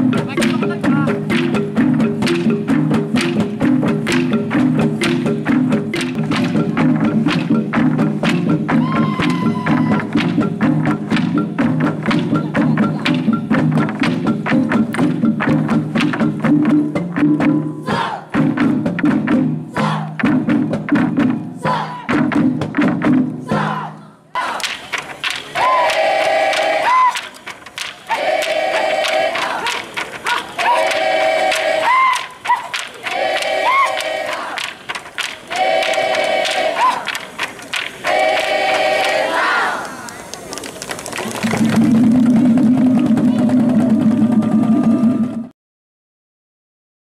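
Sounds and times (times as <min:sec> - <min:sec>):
group chanting with rising whoops: 0:08.8 - 0:10.2, 0:17.8 - 0:18.4, 0:25.5 - 0:27.3, 0:28.1 - 0:34.6, 0:35.5 - 0:37.2, 0:38.0 - 0:40.1
sharp percussive clicks: 0:24.6 - 0:39.2.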